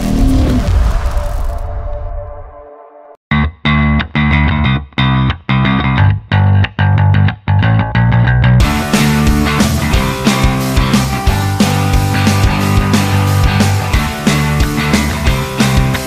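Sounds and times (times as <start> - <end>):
distorted electric guitar rock music: 3.3 - 16.0.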